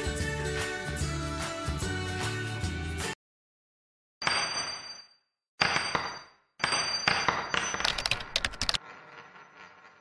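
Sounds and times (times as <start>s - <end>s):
quick run of sharp clicks: 7.8s - 8.8s.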